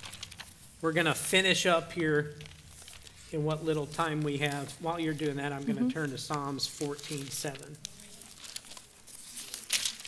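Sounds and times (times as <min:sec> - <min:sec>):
thin pages rustling: 0:00.0 - 0:00.8, 0:02.0 - 0:10.0
page turning swish: 0:06.3 - 0:10.0.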